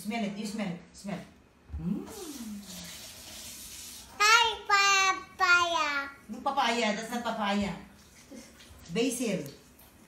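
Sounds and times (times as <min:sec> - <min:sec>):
person humming: 0:01.7 - 0:02.8
running water hiss: 0:02.1 - 0:04.2.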